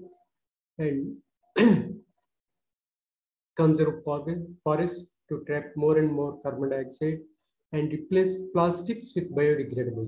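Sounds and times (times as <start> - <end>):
man clearing his throat: 1.6 - 2.0.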